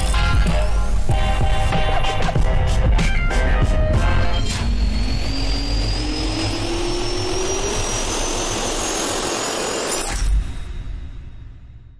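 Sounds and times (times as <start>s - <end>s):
jet engine whine rising: 0.6s - 11.9s.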